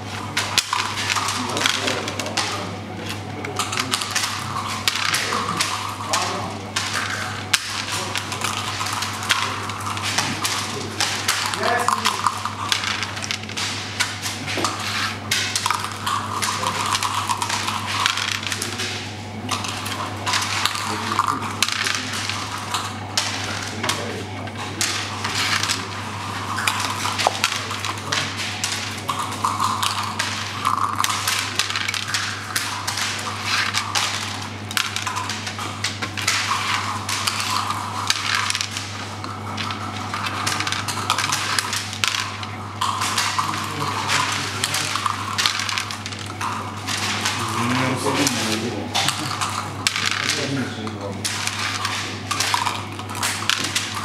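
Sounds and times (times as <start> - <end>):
checkers clacking on wooden board: 3.5 - 19.0, 19.6 - 54.0
dice rolling on board: 6.8 - 24.0, 24.7 - 54.0.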